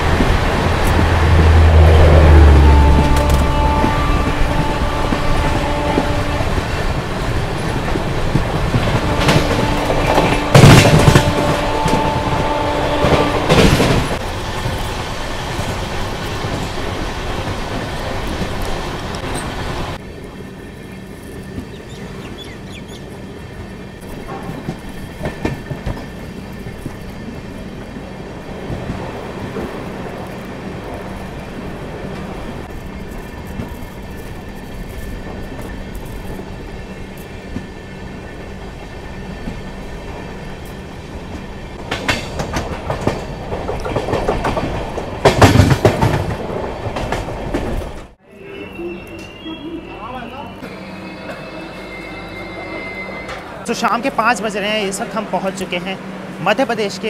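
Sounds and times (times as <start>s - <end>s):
train wheels clattering on track: 0.0s - 20.0s, 20.7s - 48.2s
train rumble with clicks: 0.0s - 48.2s.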